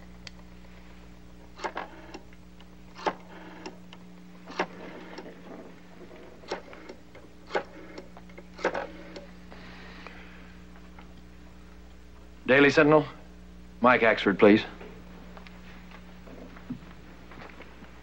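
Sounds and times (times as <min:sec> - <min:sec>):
rotary telephone dial clicking and whirring: 0:01.6 - 0:09.3.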